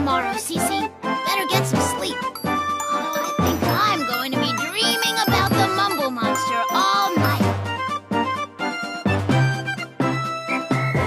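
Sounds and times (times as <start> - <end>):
bright jingly music: 1.3 - 8.4
person speaking: 1.8 - 7.5.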